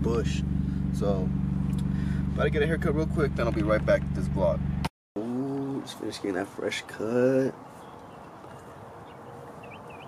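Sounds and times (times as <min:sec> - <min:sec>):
outdoor background noise: 0:03.4 - 0:10.0
small bird chirping: 0:07.6 - 0:10.0.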